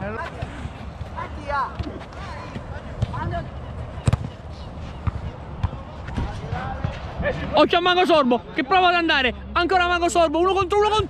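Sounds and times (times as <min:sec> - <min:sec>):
football kick thuds: 0:04.0 - 0:04.4.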